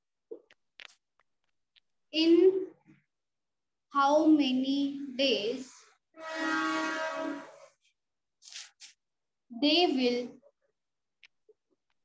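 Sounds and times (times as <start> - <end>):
horn sounding steady note: 6.2 - 7.8.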